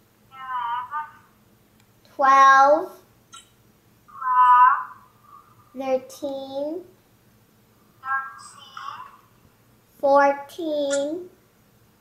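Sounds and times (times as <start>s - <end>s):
child's voice through laptop speaker: 0.3s - 1.3s, 2.2s - 3.0s, 4.1s - 5.1s, 5.7s - 6.9s, 8.0s - 9.3s, 10.0s - 11.4s.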